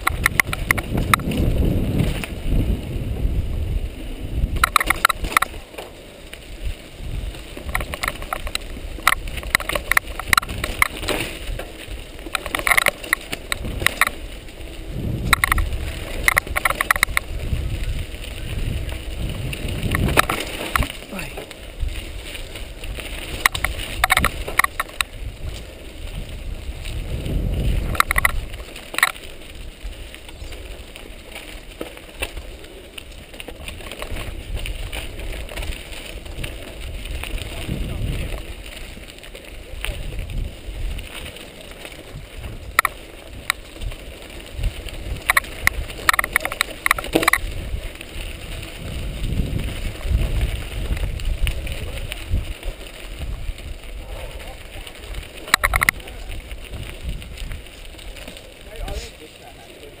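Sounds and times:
bike rattling over bumps: 0.0s - 60.0s
bike tyres rumbling on dirt: 0.0s - 60.0s
wind buffeting microphone: 0.0s - 60.0s.

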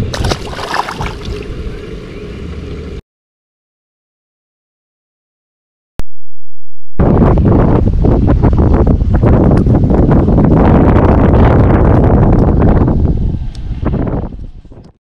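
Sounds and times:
wind buffeting microphone: 0.0s - 2.8s, 7.0s - 15.0s.

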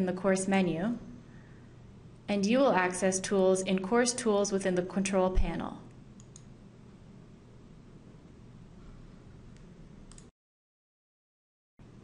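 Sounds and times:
low room hiss: 0.0s - 10.3s
computer mouse clicks: 6.2s - 6.5s, 9.5s - 10.3s.

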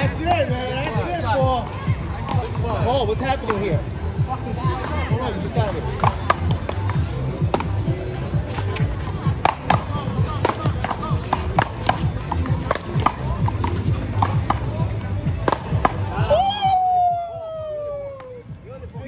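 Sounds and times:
background music: 0.0s - 19.0s
crowd chatter: 0.0s - 19.0s.

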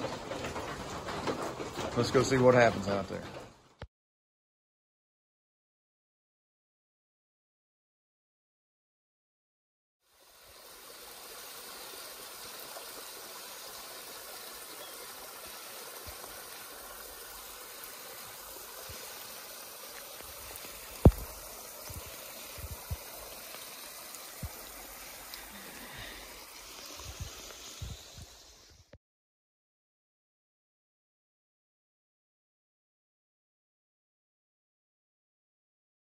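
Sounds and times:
water trickling over rocks: 10.1s - 28.9s.

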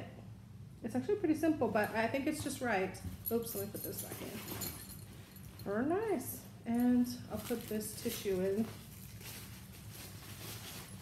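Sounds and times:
low room hum: 0.0s - 11.0s
tissue paper rustling: 7.3s - 11.0s.

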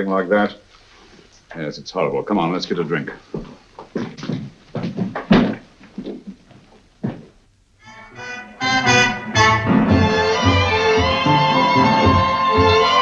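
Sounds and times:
footsteps on hard floor: 3.3s - 7.5s
orchestral string music: 7.8s - 13.0s.

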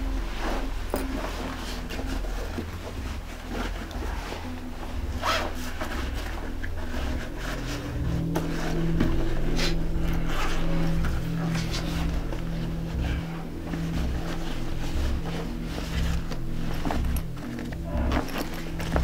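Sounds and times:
cloth rustling: 0.0s - 19.0s
low hum: 0.0s - 19.0s
zippers scraping: 0.4s - 19.0s.

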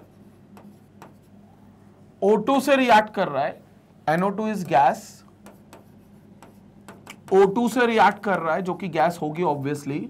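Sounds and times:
pen strokes on touchscreen: 0.0s - 1.4s, 5.4s - 7.5s
low steady hum: 0.0s - 10.0s.

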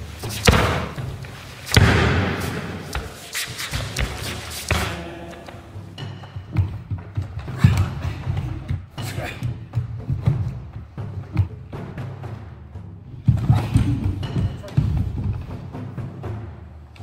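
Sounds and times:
bare feet scuffing: 0.0s - 5.0s.

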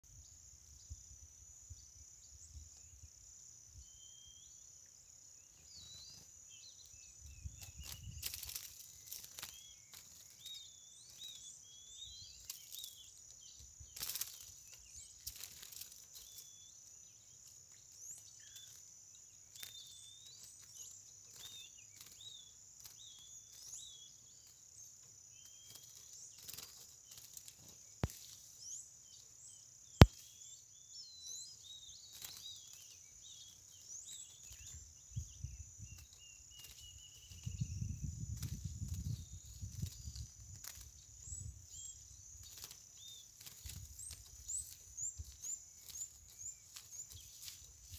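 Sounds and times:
bird chirps: 0.0s - 47.9s
insects droning: 0.0s - 47.9s.

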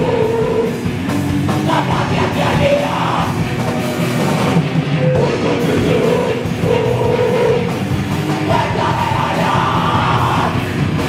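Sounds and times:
punk band playing: 0.0s - 11.0s.

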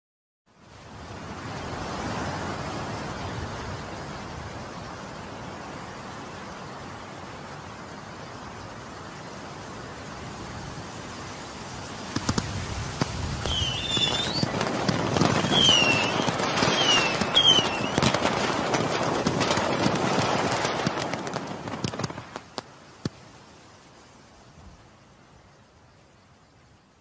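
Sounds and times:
fireworks crackling: 12.0s - 23.2s
fireworks bangs: 12.1s - 23.2s
fireworks whistles: 13.0s - 22.5s.

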